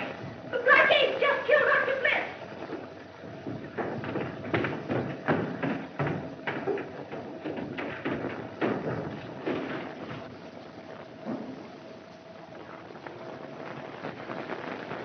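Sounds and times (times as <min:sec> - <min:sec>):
old film soundtrack hiss: 0:00.0 - 0:15.0
footsteps on wooden floor: 0:02.4 - 0:10.5.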